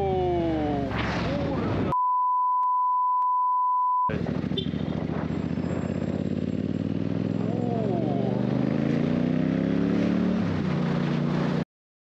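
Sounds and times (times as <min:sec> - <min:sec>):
motorcycle engine accelerating: 0:04.1 - 0:11.6.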